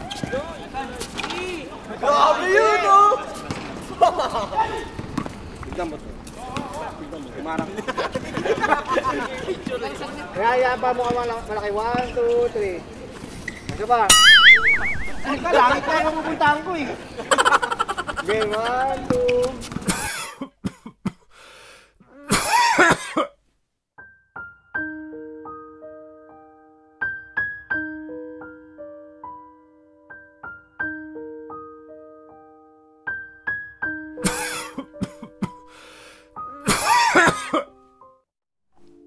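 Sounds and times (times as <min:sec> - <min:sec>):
person coughing: 0:19.9 - 0:21.3, 0:22.2 - 0:23.3, 0:34.2 - 0:35.7, 0:36.6 - 0:37.7
person breathing: 0:21.2 - 0:22.0, 0:35.5 - 0:36.4
soft piano music: 0:24.0 - 0:35.7, 0:36.3 - 0:38.2.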